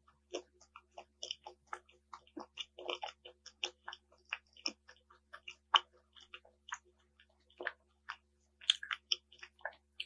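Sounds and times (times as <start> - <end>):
chewing ice cream bar: 0.0 - 10.0.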